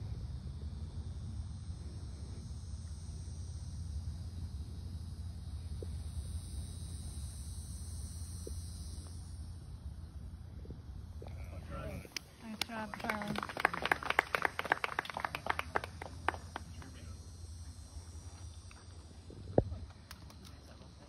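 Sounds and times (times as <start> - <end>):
high insect buzz: 0.0 - 21.0.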